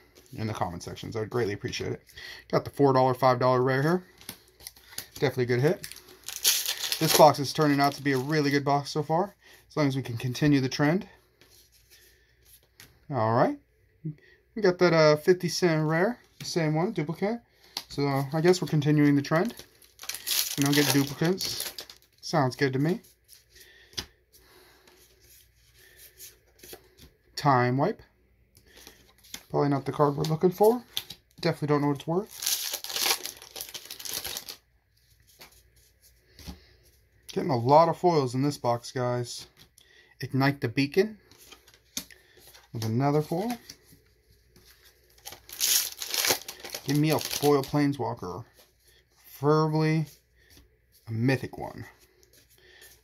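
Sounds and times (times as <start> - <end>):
cards rustling and clicking: 4.1 - 8.6, 17.6 - 22.1, 41.3 - 47.8
foil wrapper tearing and crinkling: 4.6 - 8.4, 19.4 - 22.1, 32.2 - 34.6, 45.2 - 47.8.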